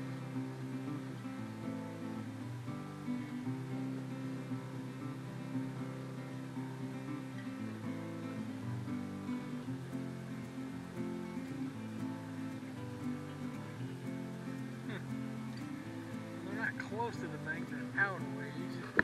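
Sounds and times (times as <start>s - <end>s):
acoustic guitar strumming chords: 0.0s - 19.0s.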